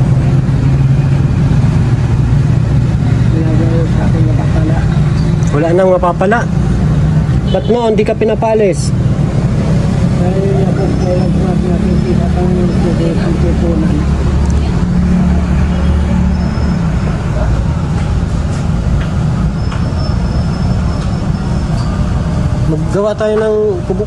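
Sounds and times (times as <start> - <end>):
low rumble of road traffic: 0.0 - 24.0.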